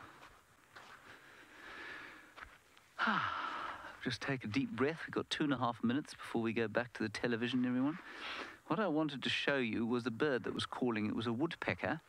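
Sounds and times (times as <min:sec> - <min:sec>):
footsteps on sandy dirt path: 0:00.0 - 0:03.0
drawn-in breath: 0:08.0 - 0:08.6.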